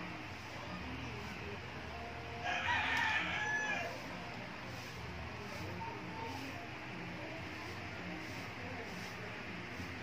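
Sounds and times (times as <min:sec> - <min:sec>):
rooster crowing: 0:02.4 - 0:04.0.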